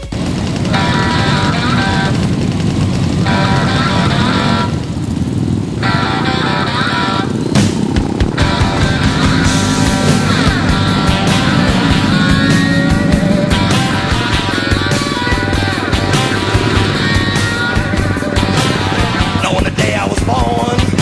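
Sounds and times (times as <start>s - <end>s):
music playing: 0.0s - 2.2s, 5.8s - 21.0s
motorcycle engines running: 0.0s - 21.0s.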